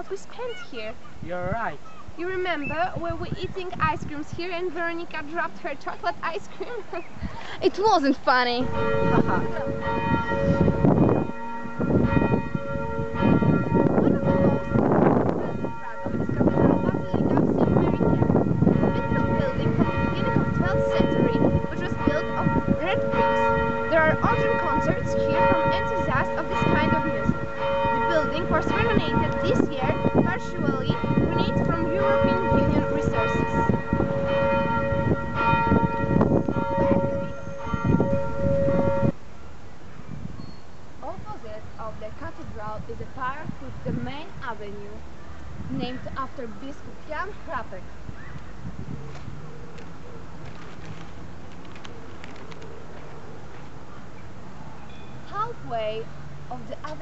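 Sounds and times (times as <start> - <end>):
church bells ringing: 7.8 - 39.2.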